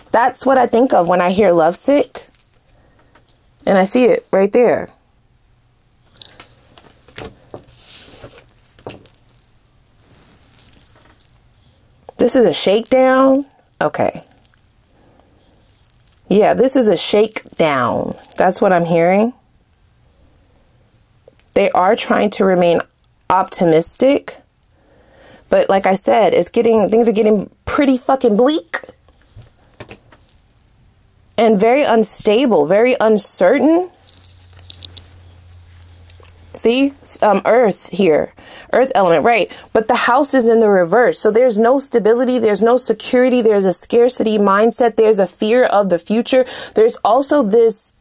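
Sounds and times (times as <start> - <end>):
metal bangles clinking: 0.2 - 2.7, 6.2 - 11.6, 12.2 - 18.6, 28.8 - 30.8, 33.5 - 37.3
card sliding on cloth: 7.7 - 8.4.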